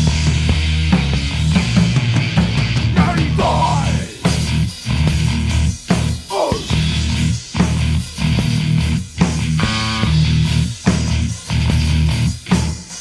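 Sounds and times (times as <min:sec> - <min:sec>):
bass guitar riffing: 0:00.0 - 0:13.0
electric guitar riffing: 0:02.2 - 0:12.4.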